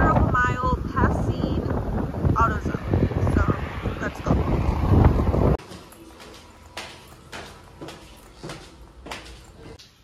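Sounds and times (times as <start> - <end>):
wind buffeting microphone: 0.0 - 5.6
footstep on tiled stair: 5.6 - 10.0.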